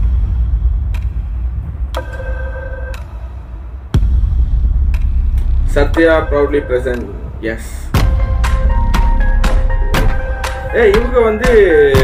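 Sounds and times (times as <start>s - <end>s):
low rumbling drone: 0.0s - 11.2s
sharp ticks: 0.8s - 2.2s, 4.8s - 7.1s
held chord of tones: 5.8s - 12.0s.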